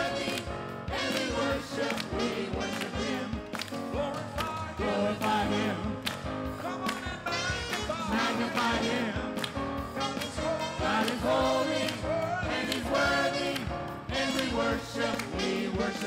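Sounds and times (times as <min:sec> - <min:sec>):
choir singing praise song: 0:00.0 - 0:16.0
instrumental backing: 0:00.0 - 0:16.0
steady drum beat: 0:00.0 - 0:16.0.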